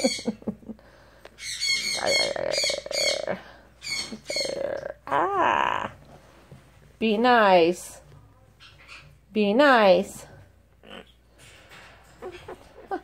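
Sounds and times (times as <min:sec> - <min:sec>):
person laughing: 0:00.0 - 0:00.8, 0:12.2 - 0:13.0
parrot squawking: 0:01.4 - 0:04.9.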